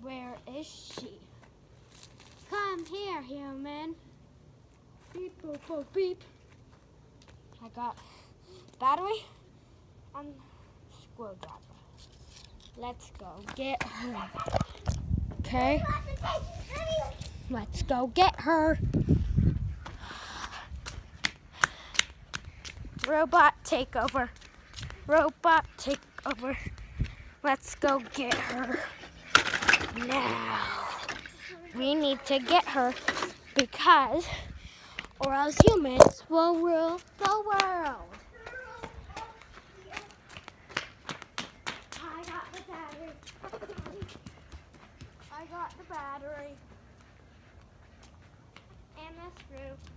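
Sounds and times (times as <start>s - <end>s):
child's footsteps in flip-flops: 4.9s - 7.9s, 11.3s - 17.4s, 19.8s - 29.2s, 34.9s - 49.9s
faint children's voices calling: 37.8s - 40.8s.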